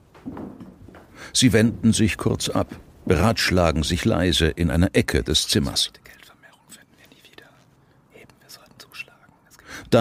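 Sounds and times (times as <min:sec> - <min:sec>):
people whispering: 0:05.5 - 0:10.0.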